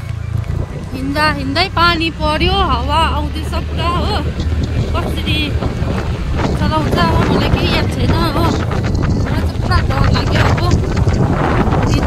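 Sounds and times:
car driving low rumble: 0:00.0 - 0:12.0
wind buffeting microphone: 0:00.0 - 0:12.0.

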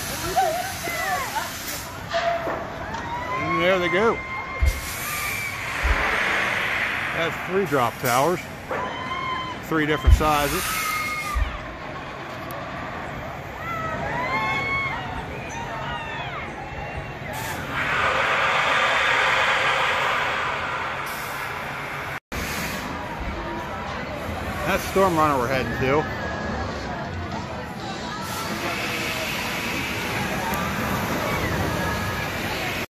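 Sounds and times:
drop tower ride rushing hiss: 0:00.0 - 0:02.2, 0:03.1 - 0:14.8, 0:17.2 - 0:26.8, 0:27.8 - 0:32.9
drop tower rushing hiss: 0:04.6 - 0:11.4, 0:17.4 - 0:23.2
short low thump: 0:05.7 - 0:07.4.

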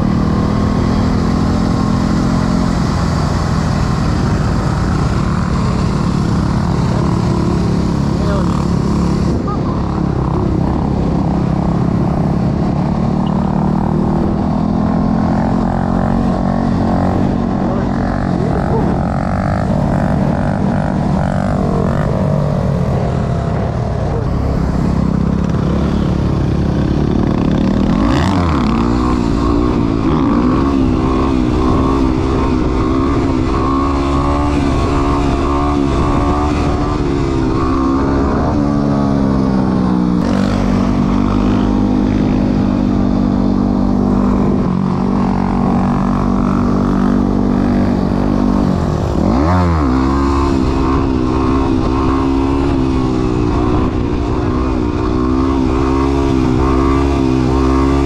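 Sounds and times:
dirt bike engine running: 0:00.0 - 0:58.0.

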